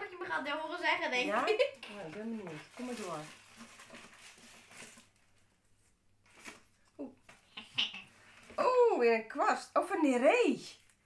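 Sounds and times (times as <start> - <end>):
packaging crinkling and rustling: 1.4 - 5.6, 6.2 - 7.0.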